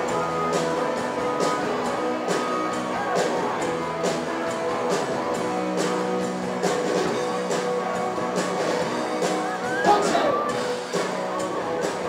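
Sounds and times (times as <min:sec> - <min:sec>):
live band with guitars and drums: 0:00.0 - 0:12.0.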